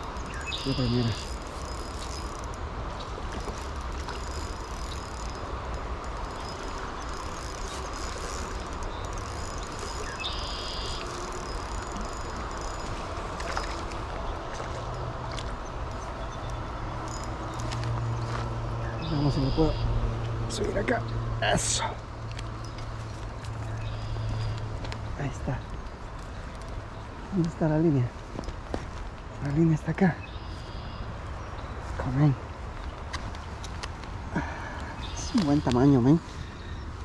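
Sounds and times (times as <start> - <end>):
spinning reel whirring: 0.0 - 14.0
river water: 0.0 - 37.0.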